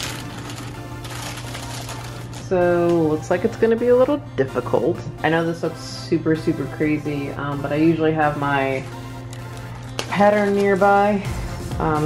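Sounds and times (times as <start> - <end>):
paper tearing: 0.0 - 2.5
paper crinkling and rustling: 0.0 - 3.1, 8.8 - 11.0.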